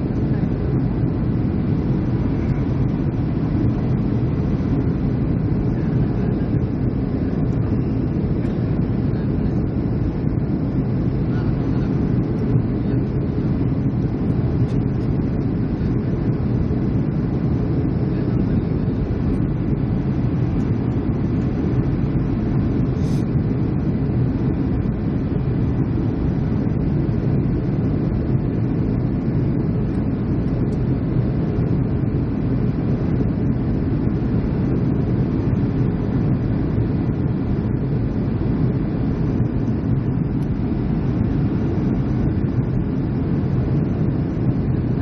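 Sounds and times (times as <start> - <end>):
airliner cabin engine rumble: 0.0 - 45.0.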